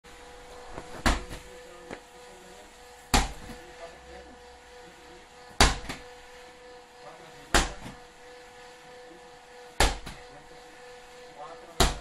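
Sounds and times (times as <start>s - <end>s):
slam ball thudding on rubber floor: 1.0s - 1.4s, 3.1s - 3.4s.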